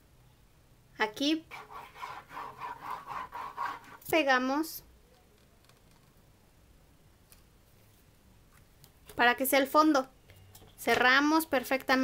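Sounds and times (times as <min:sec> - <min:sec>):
sponge rubbing on cardboard: 0:01.5 - 0:04.0.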